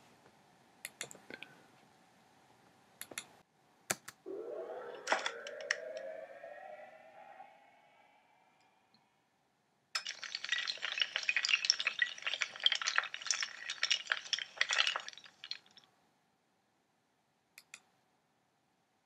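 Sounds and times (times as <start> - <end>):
rising tone: 4.2 - 9.3
clicks: 4.8 - 6.8
dominoes clattering: 10.0 - 15.8.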